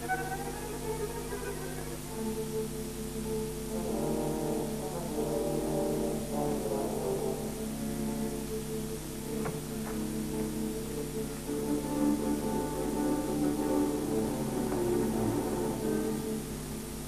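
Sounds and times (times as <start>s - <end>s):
orchestral low brass chords: 3.2s - 16.6s.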